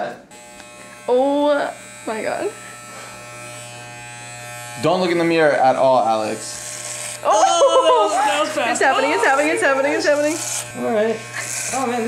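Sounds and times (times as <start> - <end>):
electric hair clippers buzzing: 0.0 - 12.0.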